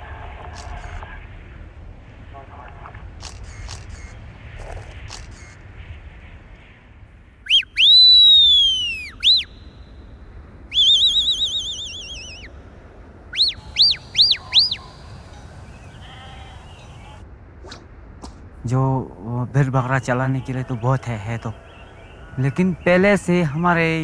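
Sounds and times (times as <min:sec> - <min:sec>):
shrill finger whistling: 0:07.5 - 0:09.6, 0:10.7 - 0:12.5, 0:13.4 - 0:14.8
warbling whistled trill: 0:07.5 - 0:09.8, 0:10.7 - 0:12.5, 0:13.3 - 0:15.4.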